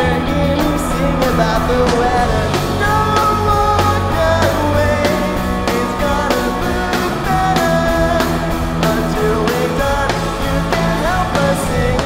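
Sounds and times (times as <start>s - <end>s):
drums: 0.0s - 12.0s
electric guitar: 0.0s - 12.0s
person singing: 0.0s - 12.0s.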